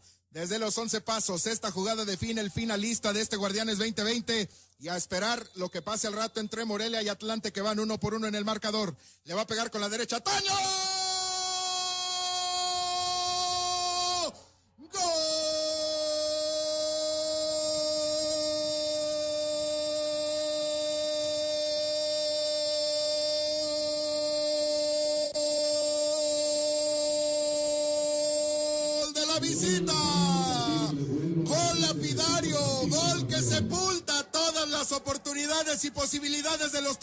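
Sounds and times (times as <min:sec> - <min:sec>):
quick breath: 0:00.0 - 0:00.3, 0:04.5 - 0:04.8, 0:09.0 - 0:09.3, 0:14.3 - 0:14.8
commentator's long goal cry: 0:29.3 - 0:33.8.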